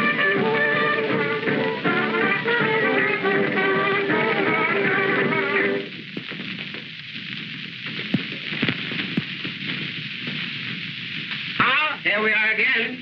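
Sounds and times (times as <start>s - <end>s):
film soundtrack crackling hiss: 0.0s - 13.0s.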